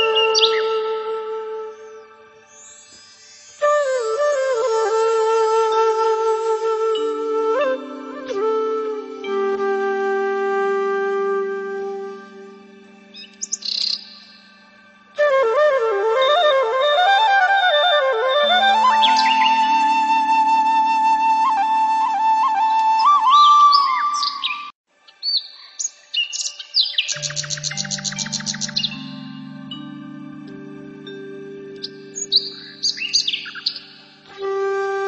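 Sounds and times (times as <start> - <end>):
bird chirping and trilling: 0.0 - 0.9, 12.6 - 14.6, 18.4 - 21.7, 23.0 - 34.5
flute note: 0.0 - 24.4, 27.1 - 35.0
held synthesizer chord: 11.2 - 15.7, 27.1 - 35.0.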